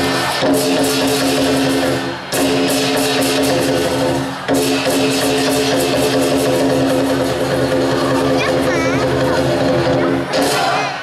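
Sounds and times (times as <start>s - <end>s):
drum and cymbals beat: 0.0s - 11.0s.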